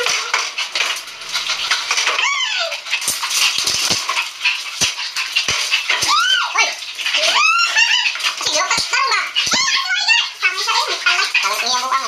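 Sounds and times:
small pet animal crying: 0:02.1 - 0:02.8.

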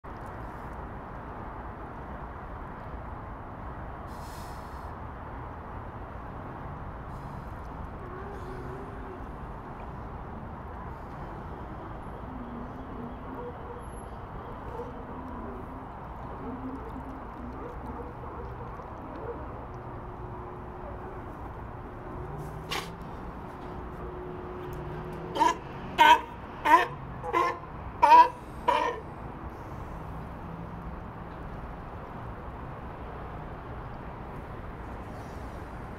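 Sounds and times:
sea lion barking: 0:25.2 - 0:29.2.

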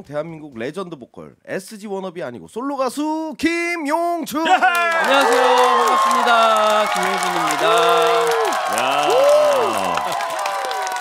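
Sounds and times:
man cheering: 0:04.4 - 0:11.0
hand clapping: 0:04.5 - 0:11.0.

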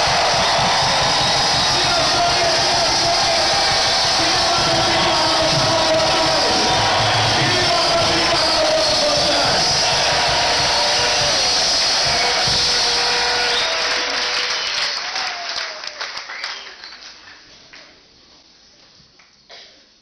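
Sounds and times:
music: 0:00.0 - 0:15.0
crowd shouting and cheering: 0:00.0 - 0:16.2
crowd clapping: 0:00.0 - 0:17.9.

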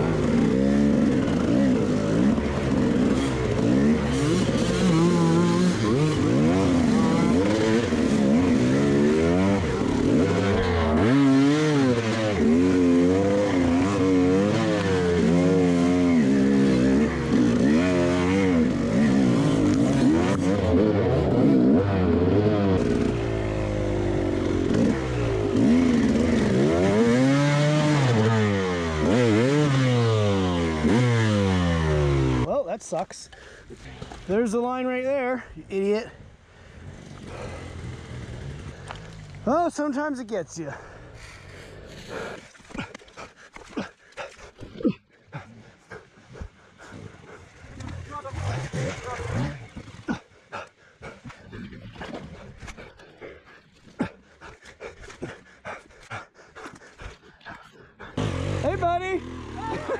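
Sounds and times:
dirt bike engine revving: 0:00.0 - 0:32.6, 0:34.0 - 0:44.0, 0:45.4 - 0:51.4, 0:58.0 - 0:59.9.

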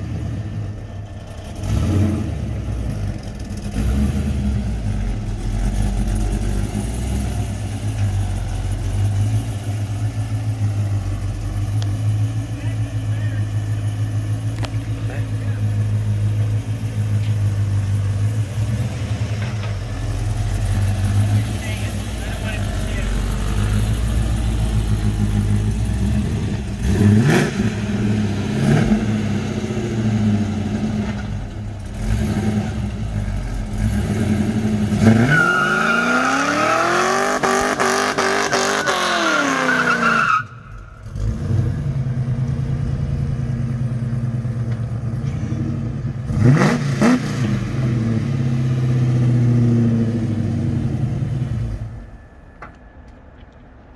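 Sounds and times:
tires spinning: 0:00.0 - 0:52.3
car engine idling and revving: 0:00.0 - 0:53.9.

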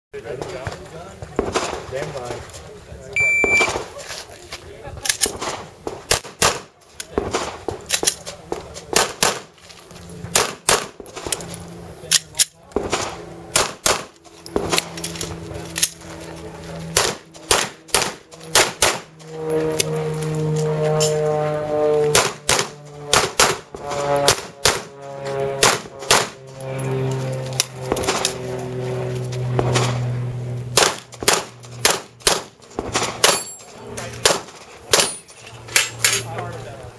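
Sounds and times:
steady low hum: 0:00.2 - 0:36.9
handgun shots: 0:05.1 - 0:08.1, 0:08.9 - 0:09.5, 0:10.3 - 0:11.0, 0:12.8 - 0:14.9, 0:17.0 - 0:19.0, 0:22.1 - 0:23.6, 0:25.6 - 0:26.3, 0:30.8 - 0:33.6, 0:34.2 - 0:35.2.

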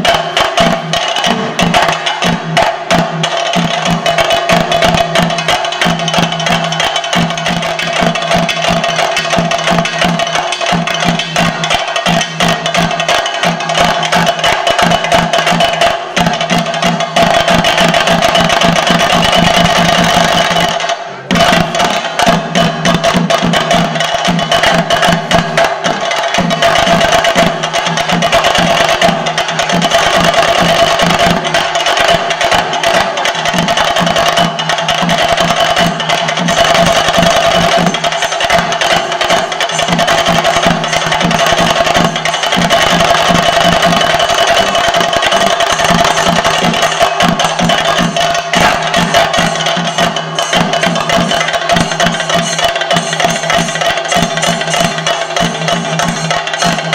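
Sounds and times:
cymbals clashing: 0:00.0 - 0:56.9
fast drum strokes: 0:00.0 - 0:56.9.

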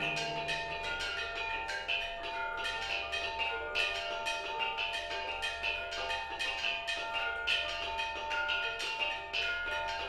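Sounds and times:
gamelan ensemble playing: 0:00.0 - 0:01.2.

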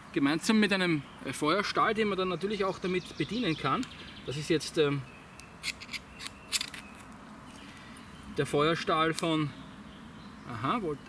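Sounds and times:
ferro rod rasping on saw spine: 0:05.6 - 0:06.9.

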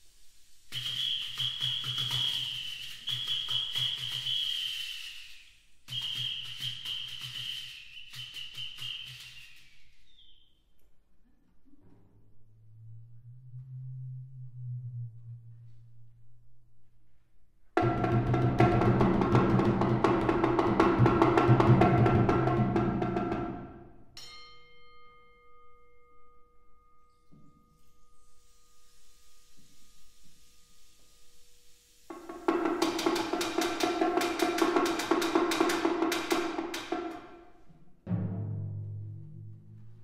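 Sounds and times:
soft hiss: 0:00.0 - 0:04.3, 0:26.9 - 0:36.0
fast drum strokes: 0:17.8 - 0:23.9, 0:32.1 - 0:40.0.

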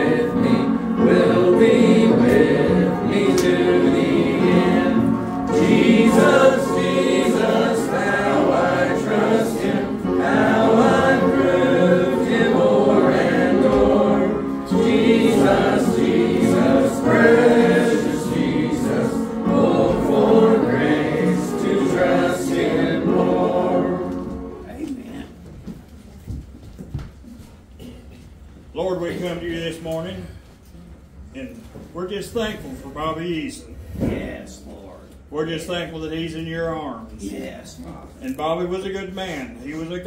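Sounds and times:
congregation singing a hymn: 0:00.0 - 0:25.0.

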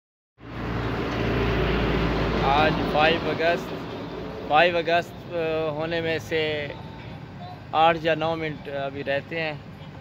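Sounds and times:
engine humming: 0:00.4 - 0:10.0
outdoor noise: 0:00.4 - 0:10.0.

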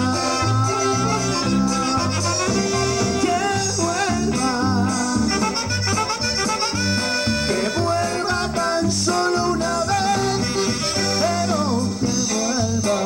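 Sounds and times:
live latin dance band: 0:00.0 - 0:13.0.

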